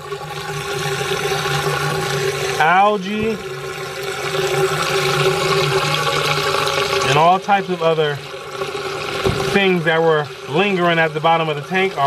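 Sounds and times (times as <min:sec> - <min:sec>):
water draining through pipe: 0:00.0 - 0:12.0.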